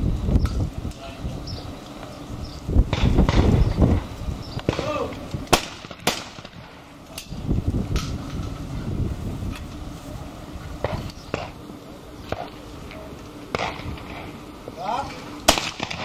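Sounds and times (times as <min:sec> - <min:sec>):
distant shotgun shots: 0:02.9 - 0:03.6, 0:04.6 - 0:06.7, 0:10.8 - 0:11.6, 0:13.5 - 0:14.3, 0:15.5 - 0:16.0.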